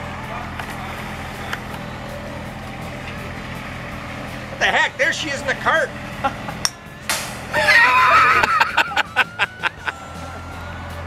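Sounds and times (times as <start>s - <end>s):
small engine humming: 0.0s - 11.0s.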